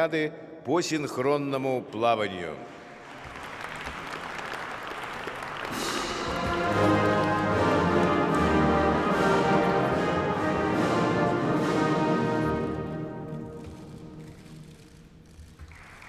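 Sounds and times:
audience applause: 3.0 - 11.4, 15.6 - 16.0
orchestral music with brass: 5.6 - 14.2.

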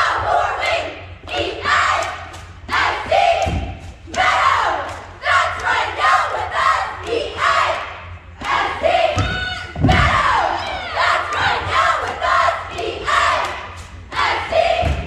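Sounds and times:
cheerleaders shouting in unison: 0.0 - 15.0
low thud: 9.1 - 10.4.

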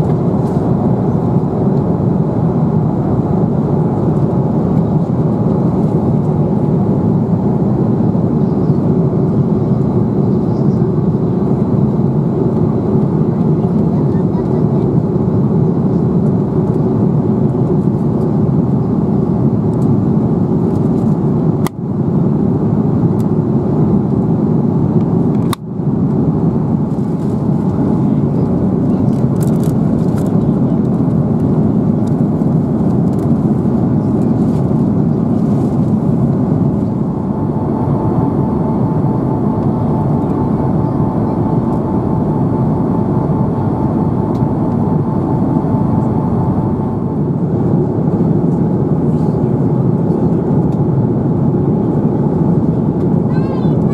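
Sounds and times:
airplane cabin noise: 0.0 - 53.9.

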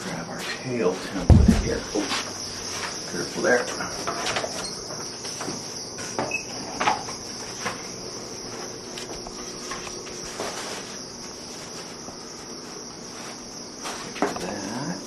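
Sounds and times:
high-pitched chirring hiss: 0.0 - 15.0
board knocks and clatter: 1.3 - 2.1.

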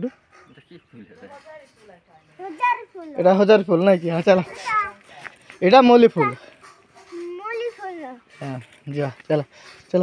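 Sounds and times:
child's voice: 2.4 - 3.2, 4.5 - 5.1, 6.2 - 6.4, 7.0 - 8.3.

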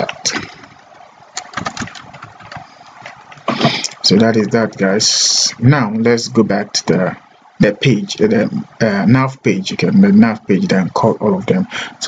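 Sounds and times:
keyboard keys clicking: 1.4 - 2.6.

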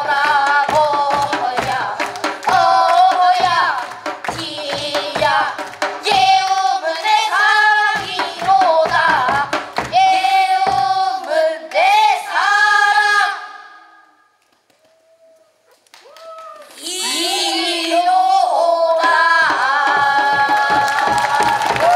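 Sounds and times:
steady percussive beat: 0.0 - 11.4, 19.0 - 21.9
voices singing a melody: 0.0 - 14.1, 16.8 - 21.9.

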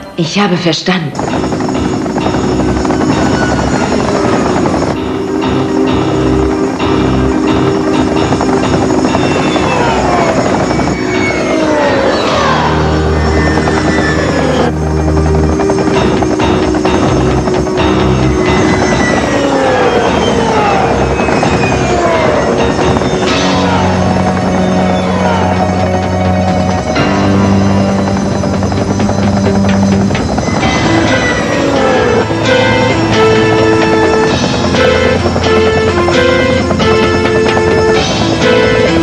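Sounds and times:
background music: 0.0 - 39.0
rotor-like drone: 1.1 - 39.0
falling whistles: 8.9 - 14.7, 18.3 - 28.0.

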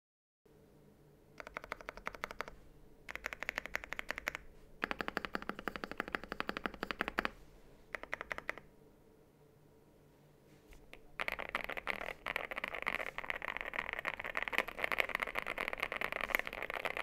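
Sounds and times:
mechanical keyboard typing: 1.4 - 2.5, 3.1 - 8.7, 11.2 - 17.0.

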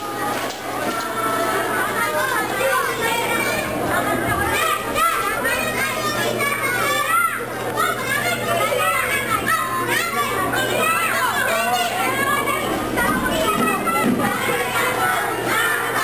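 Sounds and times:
young children chattering: 0.0 - 16.0.

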